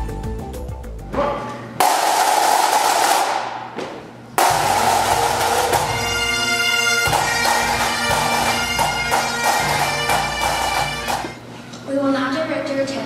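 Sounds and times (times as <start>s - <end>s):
snare and bass drums: 4.4s - 6.4s, 7.1s - 11.4s
bagpipes with drone: 4.4s - 11.4s.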